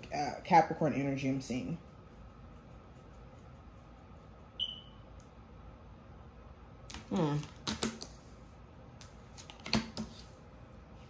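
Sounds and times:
high-pitched chirp: 4.6s - 5.0s.

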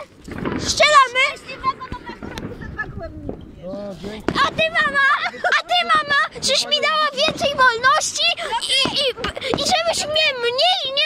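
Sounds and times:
people speaking: 0.6s - 11.0s.

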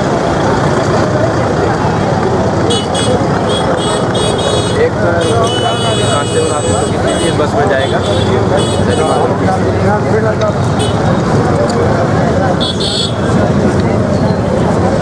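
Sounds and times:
crowd talking: 0.0s - 15.0s
high-pitched vehicle horn: 2.7s - 9.3s.

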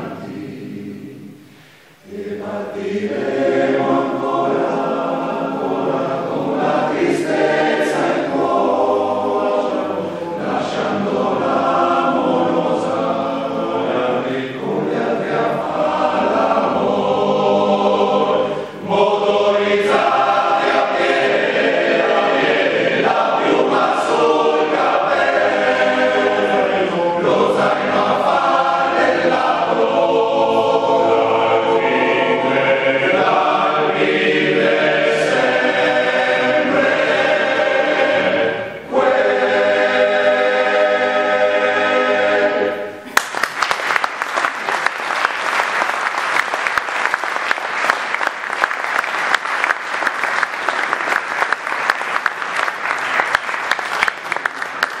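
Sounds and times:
male choir singing in harmony: 0.0s - 43.1s
audience applause: 43.1s - 55.0s.

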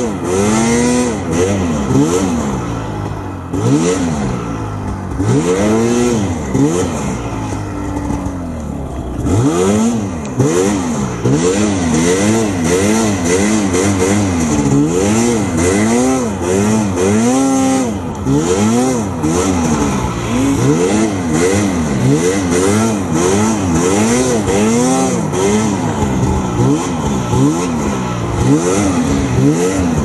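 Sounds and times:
snowmobile engine revving: 0.0s - 30.0s.

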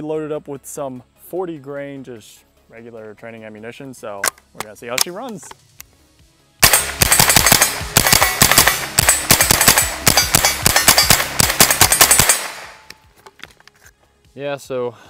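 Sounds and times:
rapid rifle shots: 6.6s - 12.9s.

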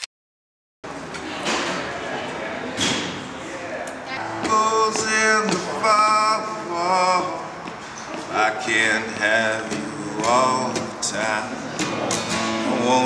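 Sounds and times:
conversation in echoing room: 1.7s - 9.4s
acoustic guitar: 4.1s - 13.0s
man singing: 4.1s - 13.0s.

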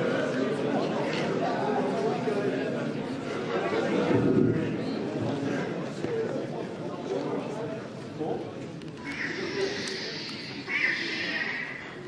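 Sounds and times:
crowd chatter: 0.0s - 12.0s
toy lightsaber buzzing hiss: 9.0s - 12.0s.

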